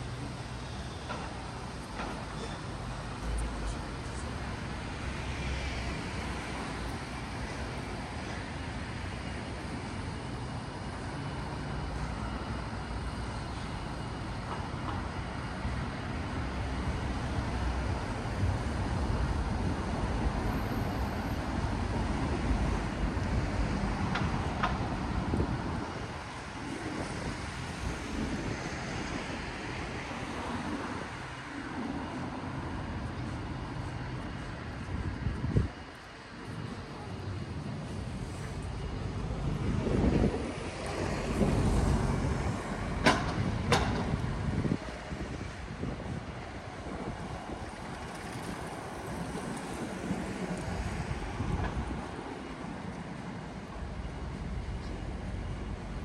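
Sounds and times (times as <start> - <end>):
city road traffic rumble: 0.0 - 56.0.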